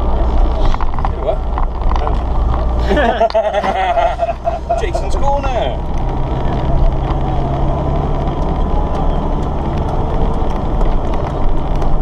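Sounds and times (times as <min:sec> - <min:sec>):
vehicle engine and road drone: 0:00.0 - 0:12.0.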